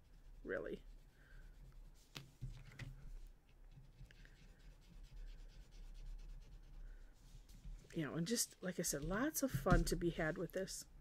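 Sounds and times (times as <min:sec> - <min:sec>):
pencil scratching on paper: 0:03.7 - 0:07.6.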